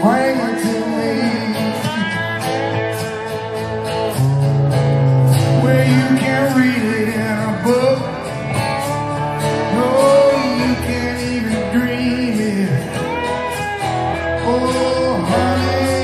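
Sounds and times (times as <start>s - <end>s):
man singing into microphone: 0.0s - 2.4s, 5.4s - 8.6s, 9.6s - 13.3s, 14.2s - 16.0s
live rock band playing: 0.0s - 16.0s.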